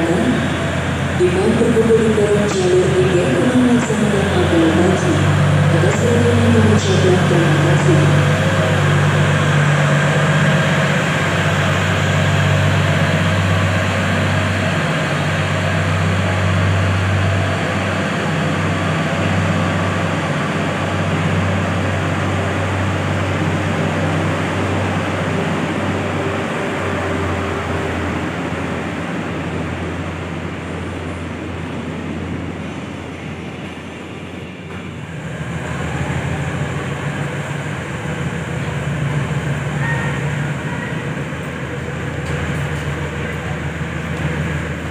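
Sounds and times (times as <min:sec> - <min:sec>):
train running with rail noise: 0:00.0 - 0:44.9.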